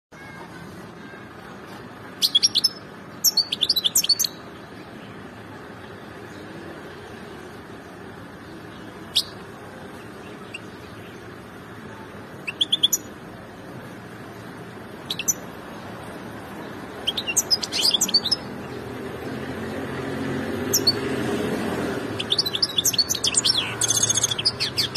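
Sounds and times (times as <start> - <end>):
finch chirping and twittering: 1.7 - 6.5, 7.4 - 11.6, 12.3 - 13.4, 14.3 - 24.9.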